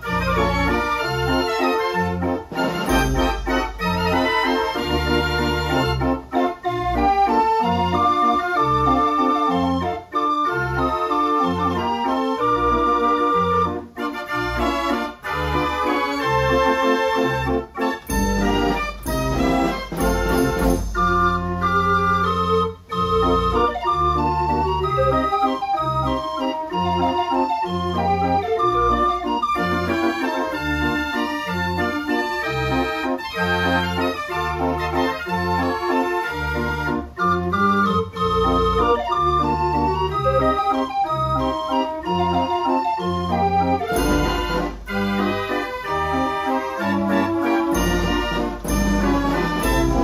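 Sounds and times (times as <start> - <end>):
street organ playing a tune: 0.0 - 50.0.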